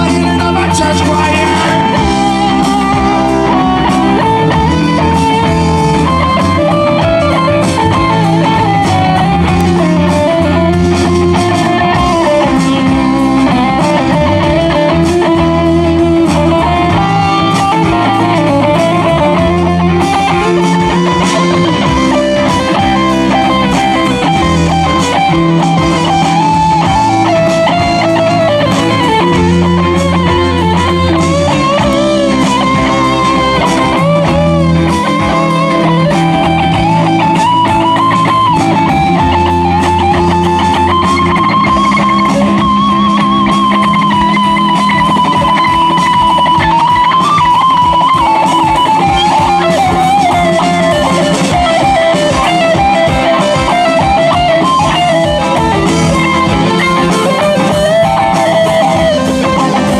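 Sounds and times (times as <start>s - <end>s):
bass guitar: 0.0s - 59.9s
drums: 0.0s - 59.9s
electric guitar lead: 0.0s - 59.9s.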